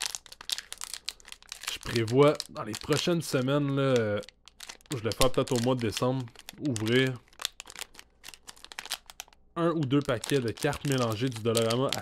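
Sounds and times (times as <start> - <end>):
foil wrapper crinkling and tearing: 0.0 - 12.0.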